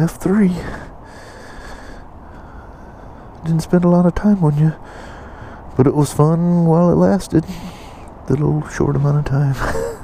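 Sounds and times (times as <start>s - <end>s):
outdoor background noise: 0.0s - 10.0s.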